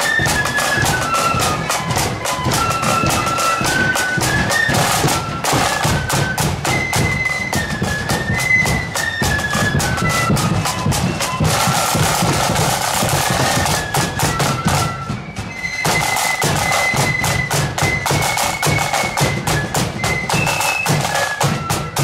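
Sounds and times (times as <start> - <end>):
shrill flute melody: 0.0 - 22.0
snare drums rolling: 0.0 - 22.0.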